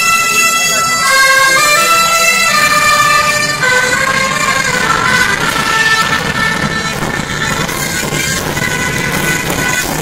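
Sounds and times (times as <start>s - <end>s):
high pipe melody: 0.0s - 10.0s
drums: 2.1s - 10.0s.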